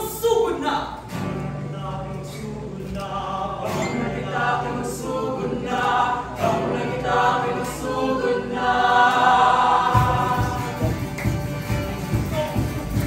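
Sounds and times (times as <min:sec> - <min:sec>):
ensemble singing together: 0:01.0 - 0:13.0.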